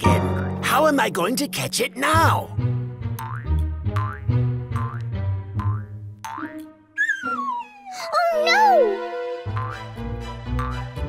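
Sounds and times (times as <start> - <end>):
light background music with bass: 0.0 - 6.8, 9.2 - 11.0
cartoon bouncy ball boings: 5.6 - 7.9.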